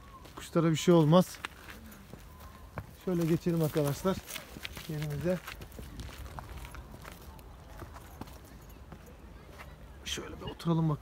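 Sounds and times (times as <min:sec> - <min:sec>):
footsteps on grass and dirt: 0:00.0 - 0:09.8.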